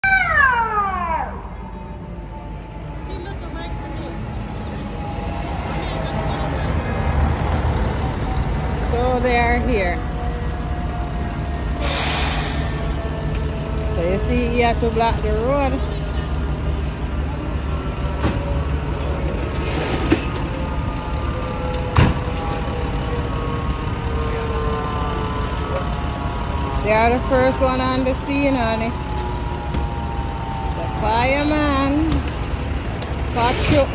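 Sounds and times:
fire engine siren: 0.0 - 33.9
low rumble of street traffic: 0.0 - 33.9.

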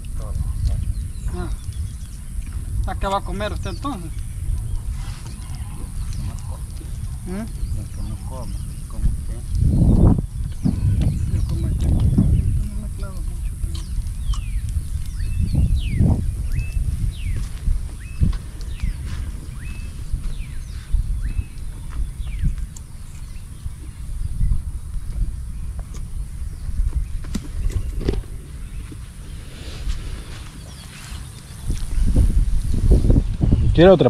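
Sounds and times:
birds chirping: 0.0 - 34.0
wind buffeting microphone: 0.0 - 34.0
steady high hiss: 12.4 - 34.0.

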